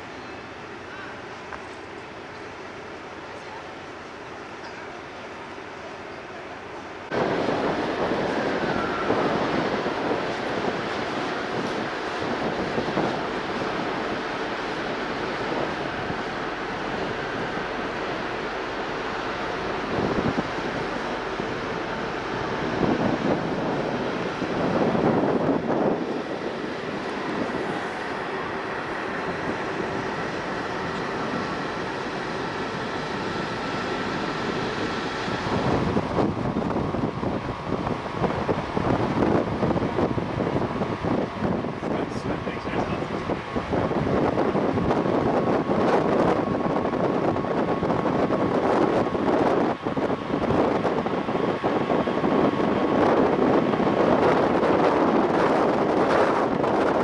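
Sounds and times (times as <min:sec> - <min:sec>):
sea wash: 0:00.0 - 0:57.0
steady low hum: 0:00.0 - 0:57.0
wind buffeting microphone: 0:07.0 - 0:57.0.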